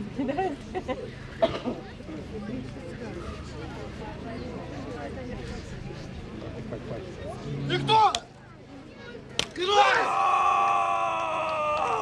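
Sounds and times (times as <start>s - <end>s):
man yelling battle cry: 9.6s - 12.0s.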